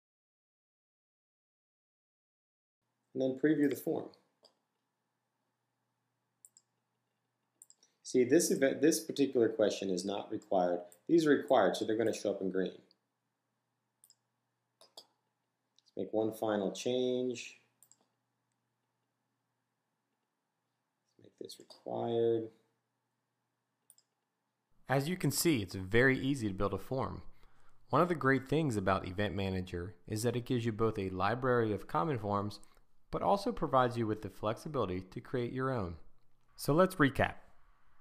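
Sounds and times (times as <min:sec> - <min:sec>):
faint computer mouse clicks: 0:06.4 - 0:06.7, 0:07.6 - 0:08.0.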